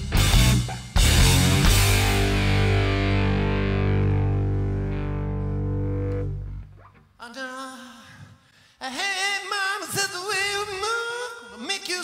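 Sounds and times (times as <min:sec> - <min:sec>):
distorted guitar and bass chord: 0:00.0 - 0:07.0
man singing: 0:07.2 - 0:12.0.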